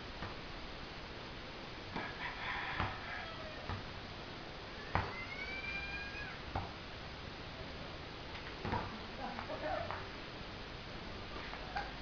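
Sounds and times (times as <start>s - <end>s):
rooster crowing: 2.0s - 3.8s
basketball bouncing on concrete: 3.7s - 3.9s, 4.8s - 5.2s, 6.5s - 6.8s, 8.6s - 8.9s.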